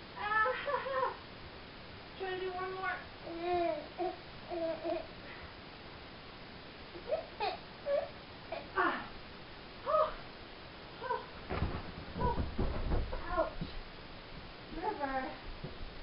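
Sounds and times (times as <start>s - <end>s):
dull knocks on carpeted floor: 11.5s - 13.8s.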